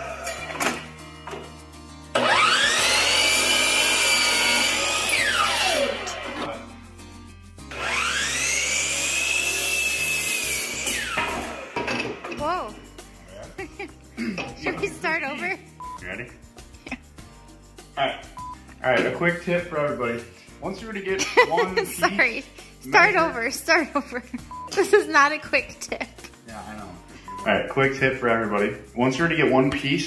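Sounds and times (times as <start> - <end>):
miter saw cutting wood: 2.1 - 6.6, 7.7 - 12.3.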